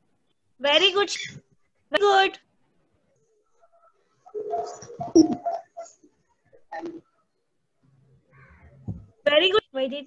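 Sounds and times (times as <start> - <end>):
bird cooing: 4.3 - 6.1.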